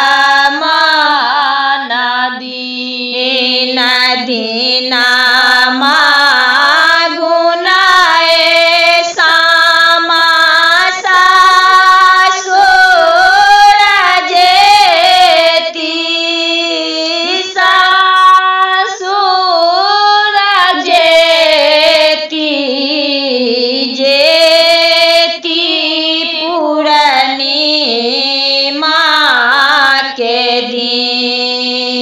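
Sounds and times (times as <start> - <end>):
woman singing folk song: 0.0 - 32.0.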